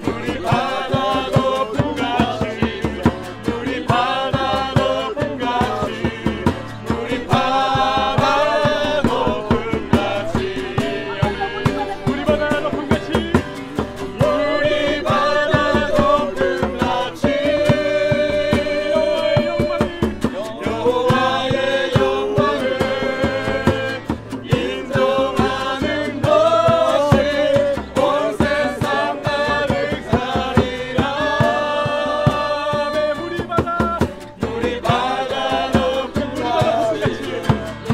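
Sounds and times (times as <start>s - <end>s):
djembe hand drum: 0.0s - 37.9s
group singing worship song: 0.0s - 37.9s
strummed acoustic guitars: 0.0s - 37.9s.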